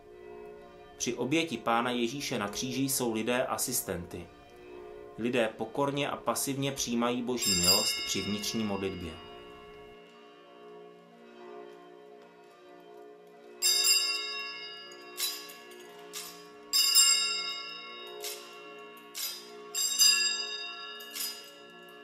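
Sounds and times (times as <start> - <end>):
small altar bells ringing: 0.0 - 12.0, 13.6 - 22.0
held chord of low tones: 0.0 - 12.1.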